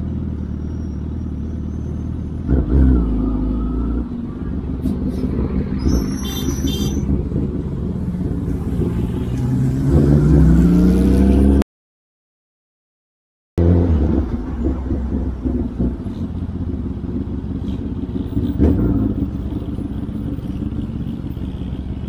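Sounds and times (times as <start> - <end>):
motorcycle engine running: 4.1 - 10.5, 14.0 - 22.0.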